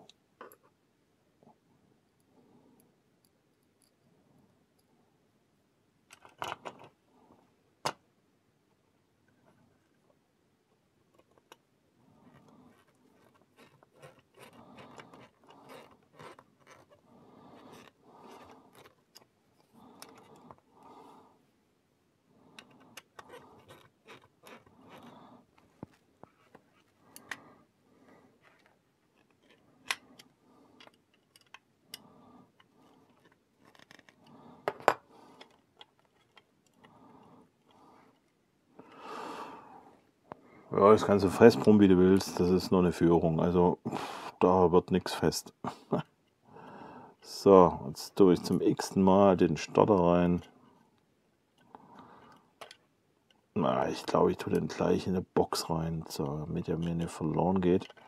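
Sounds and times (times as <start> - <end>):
plastic parts rubbing and scraping: 11.1 - 21.2, 22.4 - 38.4, 53.8 - 58.0.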